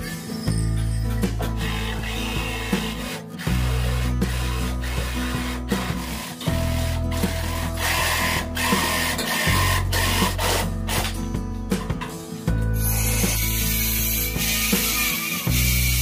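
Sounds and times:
background music: 0.0s - 16.0s
jigsaw cutting through plywood: 1.6s - 11.1s.

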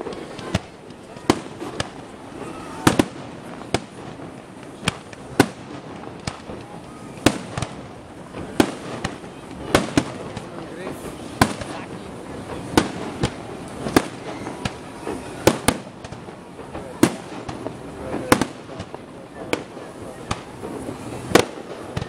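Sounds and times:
fireworks bursting in sharp bangs: 0.0s - 22.0s.

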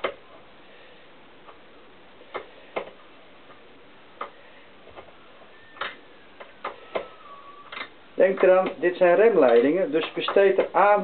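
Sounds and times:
faint squeak sliding down: 5.5s - 7.7s.

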